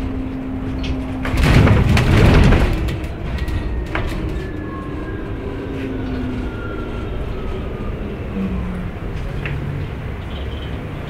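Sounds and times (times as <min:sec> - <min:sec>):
bus interior running noise: 0:00.0 - 0:11.0
faint whine: 0:00.0 - 0:11.0
low rumble: 0:00.0 - 0:11.0.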